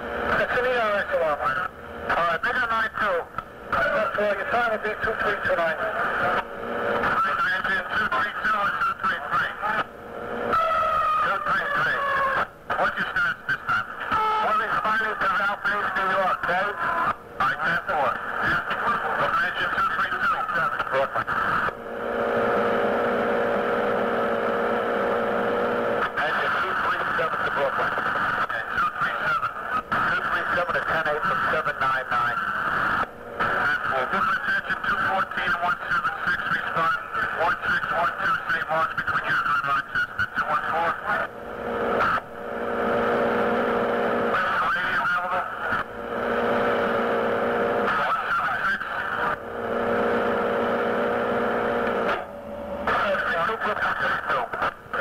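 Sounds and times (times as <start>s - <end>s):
muffled radio voices: 0.0s - 55.0s
steady radio buzzing tone: 0.0s - 55.0s.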